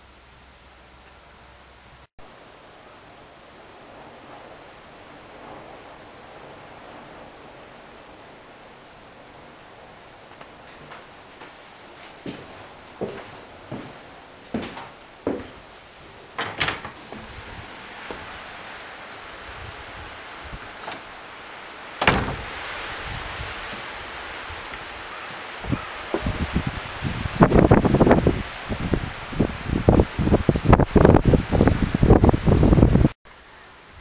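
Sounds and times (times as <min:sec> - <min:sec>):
steady outdoor hiss: 0:00.0 - 0:34.0
wind buffeting microphone: 0:16.1 - 0:21.4, 0:22.0 - 0:33.2
wooden door clunking: 0:16.3 - 0:18.2, 0:22.0 - 0:22.6.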